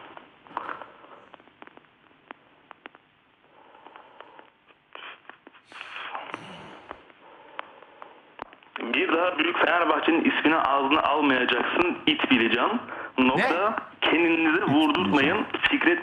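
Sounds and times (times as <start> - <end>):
muffled murmurs: 14.5 - 15.5.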